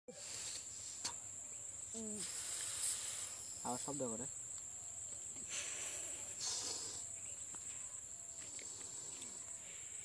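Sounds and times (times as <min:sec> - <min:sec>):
insects trilling: 0:00.1 - 0:10.0.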